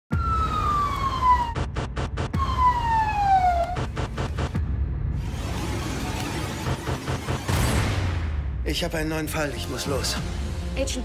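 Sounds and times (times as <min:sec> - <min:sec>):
emergency vehicle siren: 0:00.1 - 0:04.2.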